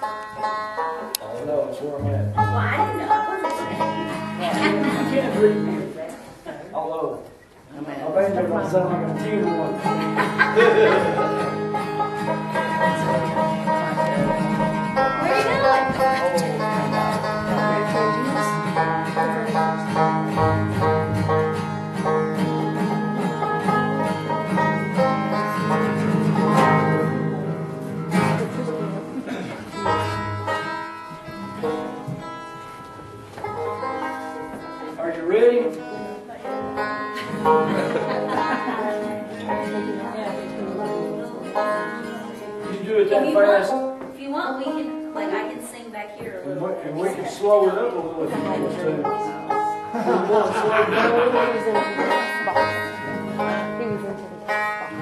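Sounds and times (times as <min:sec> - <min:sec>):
upright bass: 0:00.0 - 0:06.0, 0:08.2 - 0:32.2, 0:36.6 - 0:44.0, 0:48.0 - 0:55.0
acoustic guitar: 0:00.0 - 0:55.0
picked banjo: 0:00.0 - 0:55.0.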